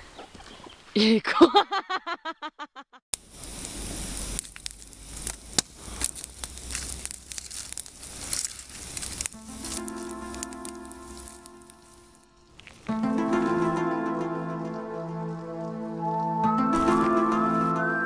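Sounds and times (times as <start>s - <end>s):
echoed laugh: 1.2s - 3.0s
campfire crackling and popping: 3.1s - 17.8s
soft music with held notes: 9.4s - 18.0s.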